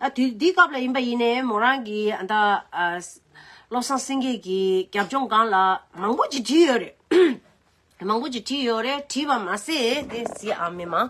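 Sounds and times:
person clearing throat: 7.1s - 7.5s.

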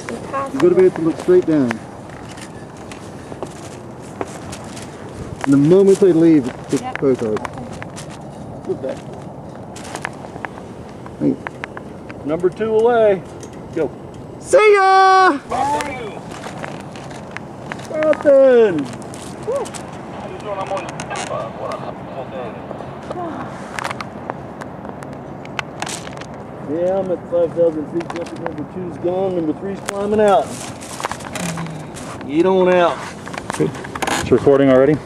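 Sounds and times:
steady low hiss: 0.0s - 35.0s
people whooping and calling: 14.4s - 16.2s, 19.4s - 19.8s, 20.6s - 22.6s
gear rustling: 15.4s - 21.4s, 29.9s - 34.4s.

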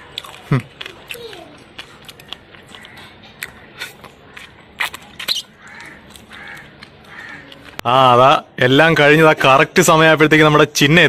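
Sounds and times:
crow cawing: 2.7s - 4.5s, 5.3s - 7.7s.

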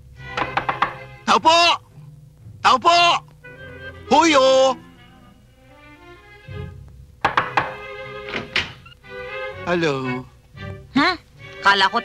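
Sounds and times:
background music: 0.0s - 12.0s
knocking on a door: 0.3s - 1.1s, 7.2s - 8.8s.

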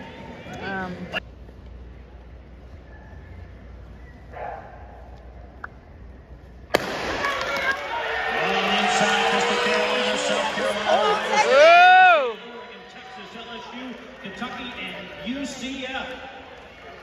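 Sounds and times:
stadium crowd cheering: 6.8s - 17.0s.

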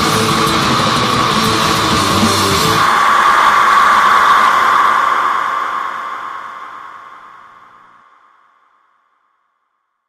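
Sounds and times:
hissing noise drone: 0.0s - 9.2s.

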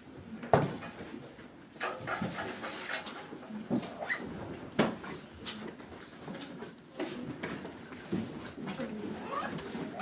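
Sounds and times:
light knocks and rustles: 0.4s - 10.0s.

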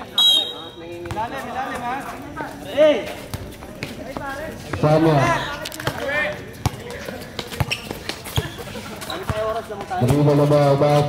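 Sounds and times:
players calling out: 0.0s - 11.0s
referee's whistle blast: 0.1s - 0.8s
basketball bouncing: 5.8s - 11.0s.

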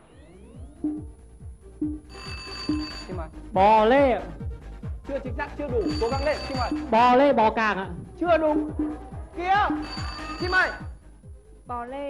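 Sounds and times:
rising electronic chirp: 0.0s - 3.2s, 8.5s - 11.6s.

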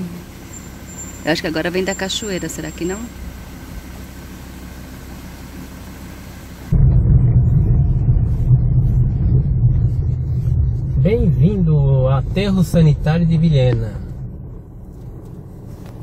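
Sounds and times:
truck engine drone: 0.0s - 16.0s
tyre and road noise: 0.0s - 16.0s.

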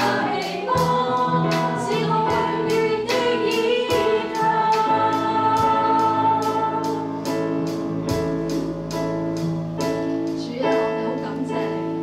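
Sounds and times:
worship song singing: 0.0s - 7.8s
instrumental accompaniment with beat: 0.0s - 12.0s.

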